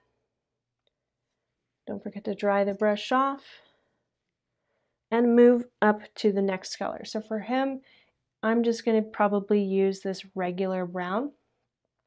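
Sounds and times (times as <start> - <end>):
woman speaking: 1.9 - 3.6, 5.1 - 7.8, 8.4 - 11.4.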